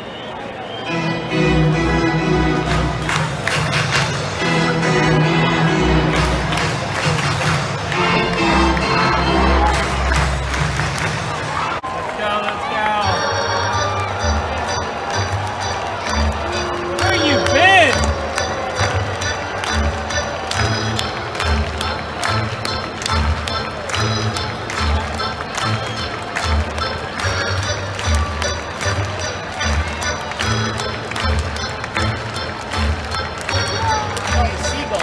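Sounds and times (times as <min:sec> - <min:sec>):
crowd voices: 0:00.0 - 0:35.0
music over public-address system: 0:00.7 - 0:11.8, 0:12.4 - 0:35.0.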